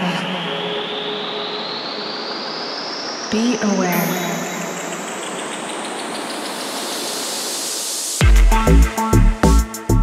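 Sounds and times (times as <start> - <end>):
synthesized white noise riser: 0.0 - 8.8.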